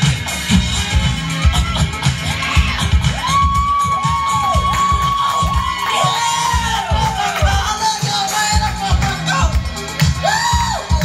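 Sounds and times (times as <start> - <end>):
disco backing track: 0.0 - 11.0
crowd cheering and whooping: 1.2 - 8.4, 10.2 - 11.0.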